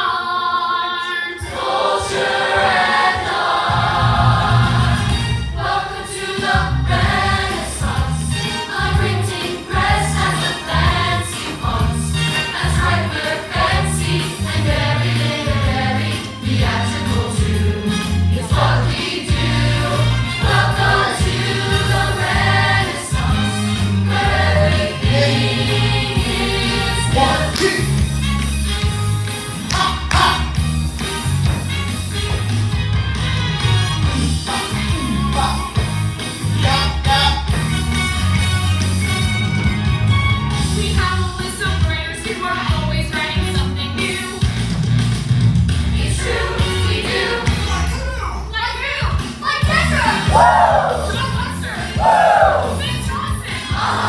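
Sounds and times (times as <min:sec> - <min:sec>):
group singing: 0:00.0 - 0:28.0, 0:45.9 - 0:47.9, 0:51.6 - 0:54.0.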